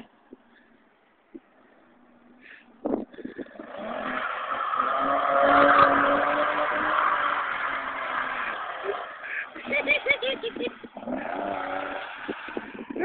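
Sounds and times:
tyres spinning on slush: 0:03.3 - 0:13.0
car engine revving hard: 0:03.4 - 0:12.9.

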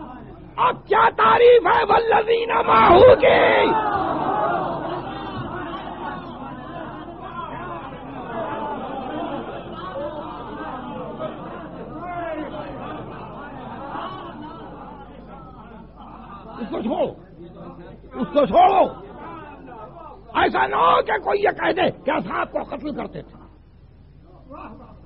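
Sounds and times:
audience murmuring: 0:02.6 - 0:16.5.

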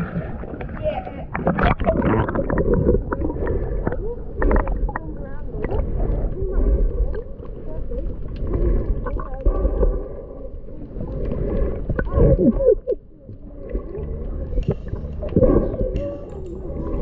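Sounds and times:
muffled underwater rumble: 0:00.0 - 0:17.0
underwater gurgling: 0:00.0 - 0:17.0.

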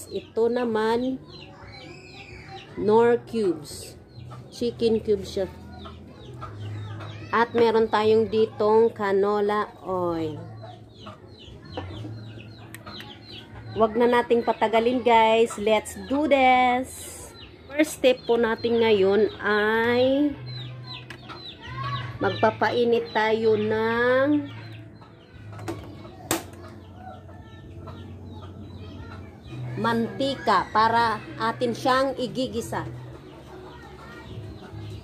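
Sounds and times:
chickens chirping: 0:00.0 - 0:35.0.

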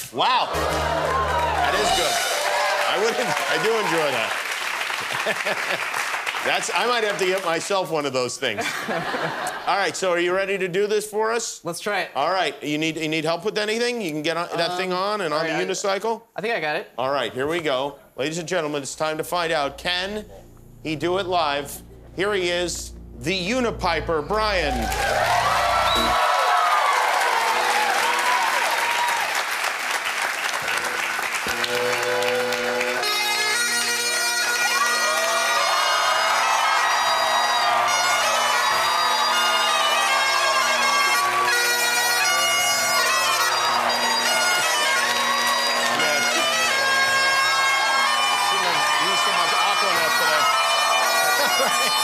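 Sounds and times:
audience applause and cheering: 0:00.0 - 0:08.0, 0:24.5 - 0:52.0
bagpipe chanter melody: 0:00.5 - 0:04.3, 0:19.4 - 0:26.3, 0:30.7 - 0:52.0
bagpipe drones: 0:00.5 - 0:04.3, 0:19.4 - 0:26.3, 0:30.6 - 0:52.0.

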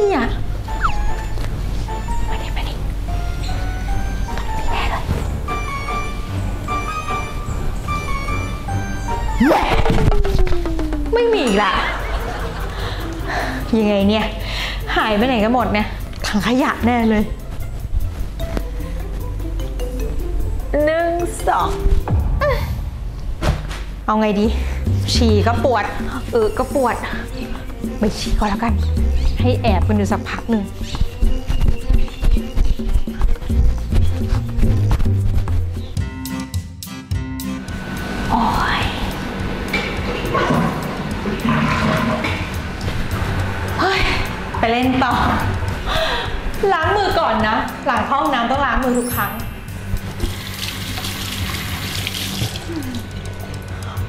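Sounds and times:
woman speaking: 0:00.0 - 0:00.4, 0:11.1 - 0:12.1, 0:13.6 - 0:17.4, 0:20.7 - 0:21.8, 0:24.1 - 0:31.0, 0:38.3 - 0:39.2, 0:43.8 - 0:45.6, 0:46.6 - 0:49.5
background music with low bass: 0:00.0 - 0:54.0
hands washing under water: 0:50.1 - 0:53.0.

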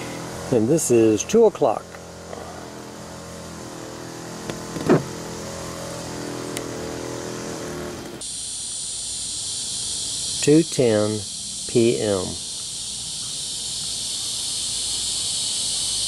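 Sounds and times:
high buzz of insects: 0:00.0 - 0:16.0
steady motor hum: 0:00.0 - 0:16.0.

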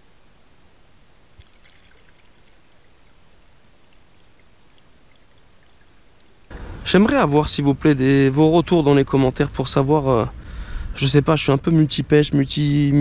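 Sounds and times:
faint ticks: 0:01.3 - 0:06.5
loud rush of noise: 0:06.5 - 0:10.6.

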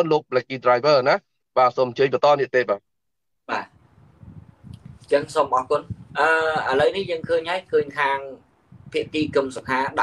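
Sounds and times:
low rumbling microphone noise: 0:03.5 - 0:10.0.

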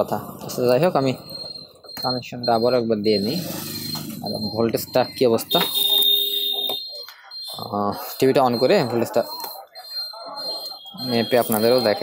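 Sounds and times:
high-pitched electronic beep: 0:00.4 - 0:12.0.

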